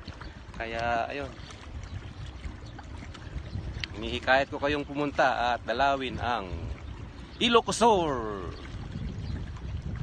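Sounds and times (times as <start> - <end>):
low rumble of water: 0.0 - 10.0
wind noise: 0.0 - 10.0.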